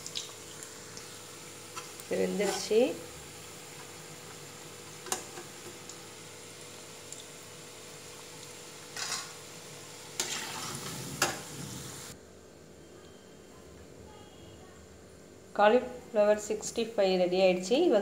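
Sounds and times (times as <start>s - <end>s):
oil sizzling in deep fryer: 0.0s - 12.2s.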